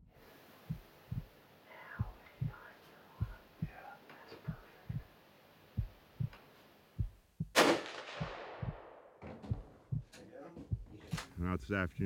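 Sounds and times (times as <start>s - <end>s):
soft low thumping: 0.6s - 1.3s, 1.9s - 3.8s, 4.4s - 5.1s, 5.8s - 6.4s, 7.0s - 7.6s, 8.2s - 11.4s
rifle shot echoing: 7.5s - 9.2s.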